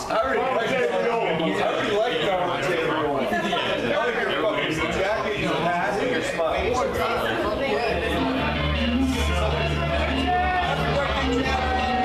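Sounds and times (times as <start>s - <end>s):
voices chattering: 0.0s - 12.0s
music with low bass notes: 8.1s - 12.0s.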